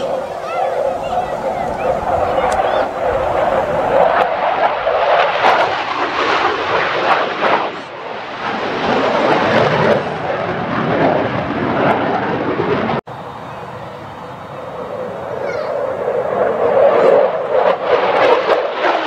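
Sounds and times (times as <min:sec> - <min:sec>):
jet engines roaring: 0:00.0 - 0:19.0.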